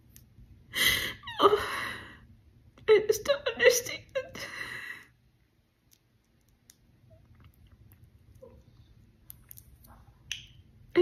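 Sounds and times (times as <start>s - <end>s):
woman weeping and speaking: 2.9s - 4.6s
wet mouth clicks: 5.8s - 10.6s.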